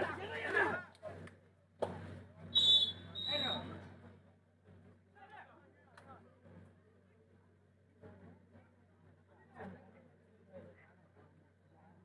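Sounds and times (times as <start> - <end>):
referee whistle blasts: 2.6 - 3.7.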